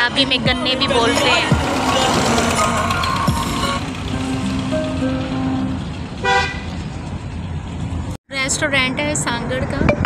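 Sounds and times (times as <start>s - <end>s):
vehicle horn toot: 6.2s - 6.8s.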